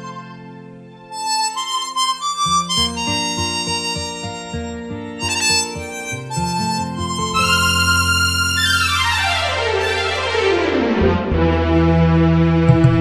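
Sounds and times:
chromatic harmonica melody: 0.0s - 11.2s
backing music with low notes: 0.0s - 13.0s.

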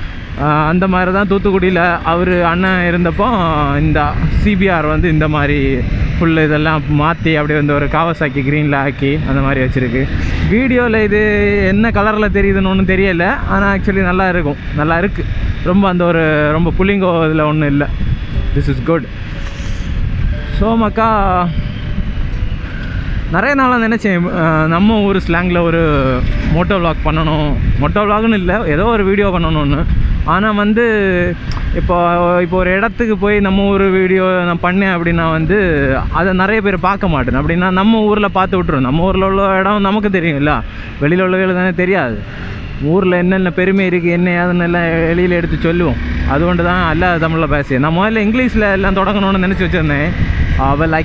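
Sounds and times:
motorcycle engine: 0.0s - 51.0s
wind on microphone: 0.0s - 51.0s
man talking: 0.4s - 19.2s, 20.5s - 21.6s, 23.3s - 51.0s.

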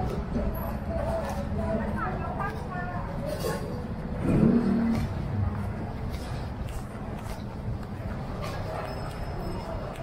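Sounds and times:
street noise: 0.0s - 10.0s
vehicle engine revving: 4.1s - 5.7s.

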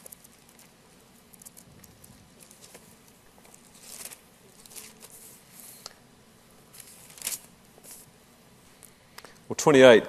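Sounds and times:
low room hum: 0.0s - 10.0s
paper pages rustling: 1.3s - 5.8s, 6.7s - 8.1s.

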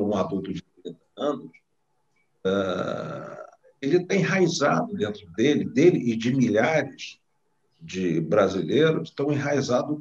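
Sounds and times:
man's drawn-out hesitation sound: 0.0s - 0.6s, 2.5s - 7.1s, 7.9s - 10.0s
man speaking: 0.0s - 1.5s, 2.5s - 7.1s, 7.8s - 10.0s.

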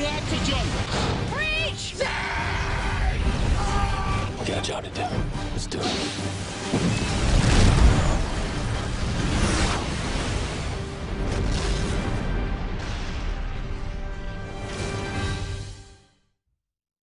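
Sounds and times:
movie trailer music: 0.0s - 16.4s.

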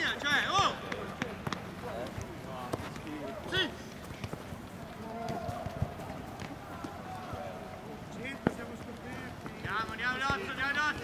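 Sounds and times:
running footsteps on turf: 0.0s - 11.0s.

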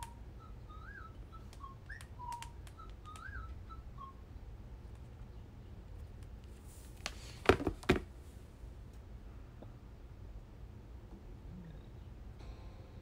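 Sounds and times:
faint whistle-like chirps: 0.0s - 4.3s
light clicks: 1.5s - 3.4s.

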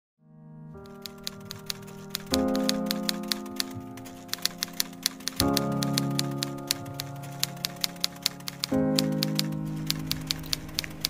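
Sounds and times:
background music of sustained chords: 0.3s - 11.0s
typewriter keys clacking: 0.9s - 11.0s.

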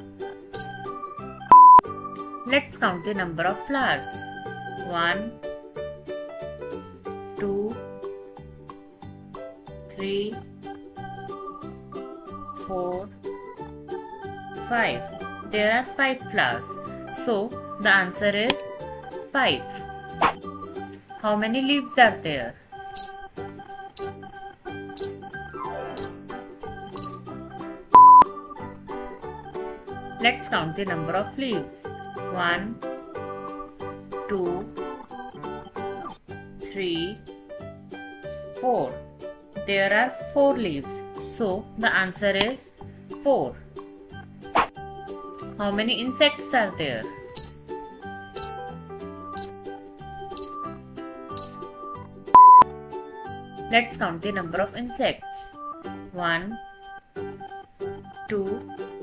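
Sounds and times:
light background music: 0.0s - 59.0s
steady beep: 1.5s - 1.8s, 23.0s - 23.2s, 27.0s - 27.2s, 52.4s - 52.6s
high timer ticks: 23.0s - 23.2s, 27.0s - 27.2s.

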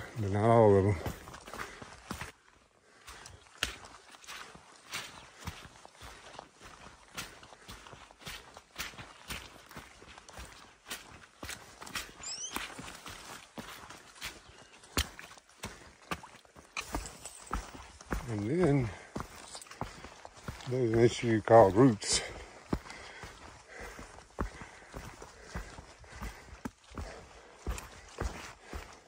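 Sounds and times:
boots stepping on rocky trail: 0.0s - 29.0s.

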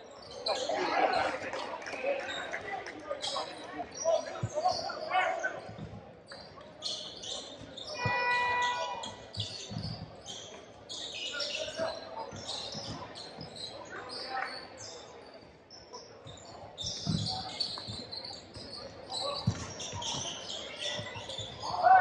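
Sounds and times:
sneakers squeaking on court: 3.2s - 22.0s
basketball bouncing: 19.4s - 20.3s.

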